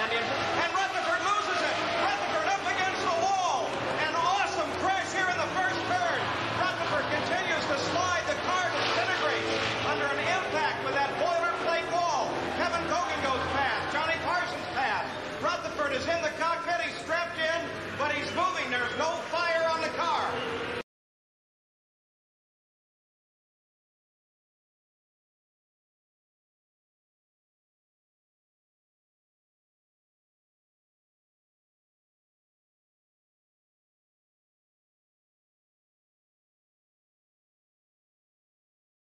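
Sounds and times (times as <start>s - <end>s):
indistinct talking: 0.0s - 20.8s.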